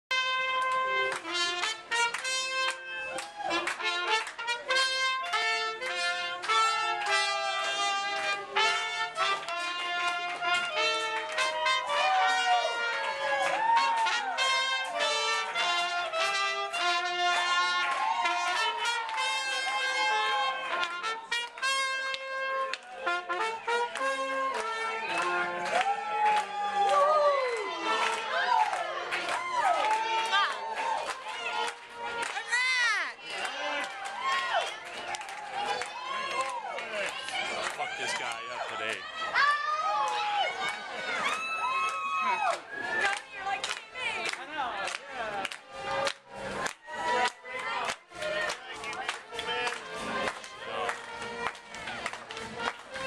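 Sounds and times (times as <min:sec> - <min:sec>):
trumpet clarinet and trombone band: 0:00.1 - 0:35.4, 0:48.2 - 0:53.0.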